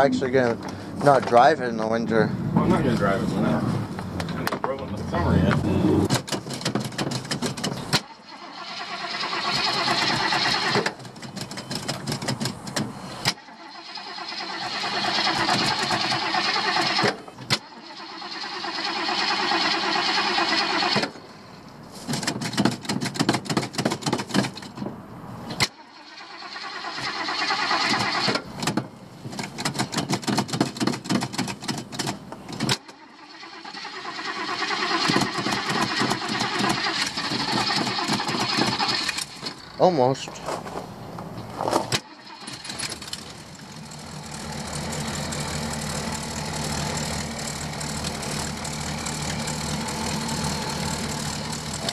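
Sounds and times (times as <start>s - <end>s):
car engine cranking: 0.0s - 21.4s, 22.0s - 24.8s, 25.5s - 51.9s.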